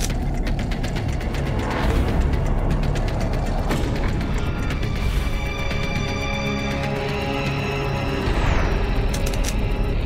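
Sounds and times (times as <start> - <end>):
rapid mechanical ticking: 0.0 - 6.3.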